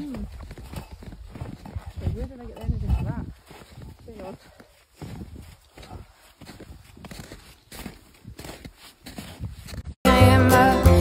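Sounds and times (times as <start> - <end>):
running footsteps in snow: 0.0 - 10.0.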